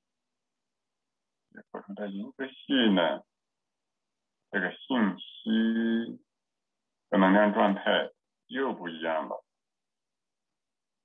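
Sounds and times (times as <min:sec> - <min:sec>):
man's voice: 0:01.6 - 0:03.2, 0:04.6 - 0:06.2, 0:07.2 - 0:09.4.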